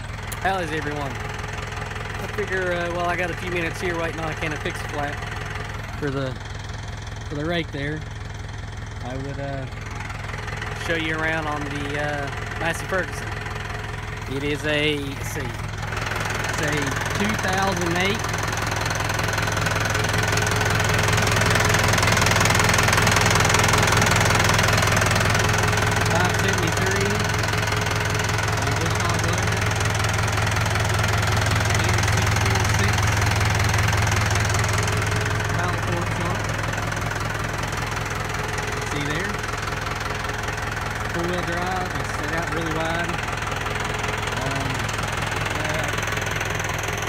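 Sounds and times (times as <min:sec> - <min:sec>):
tractor diesel engine idling: 0:00.0 - 0:47.0.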